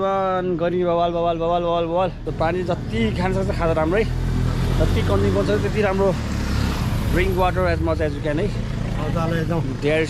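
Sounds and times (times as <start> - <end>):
vehicle driving past: 2.2 - 10.0.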